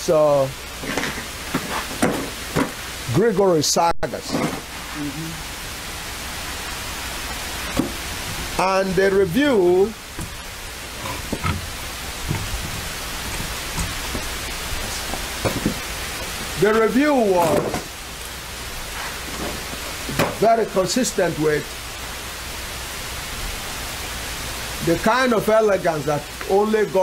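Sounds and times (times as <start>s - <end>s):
rain falling: 0.0s - 27.0s.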